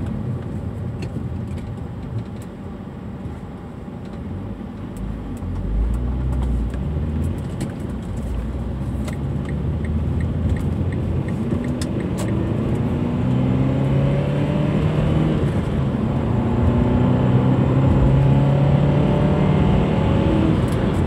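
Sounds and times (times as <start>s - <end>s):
road noise: 0.0s - 21.0s
car engine accelerating: 5.0s - 21.0s.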